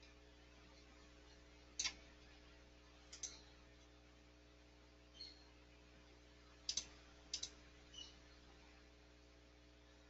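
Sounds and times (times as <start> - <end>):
computer mouse clicks: 1.8 - 2.0, 3.1 - 3.5, 6.7 - 8.1.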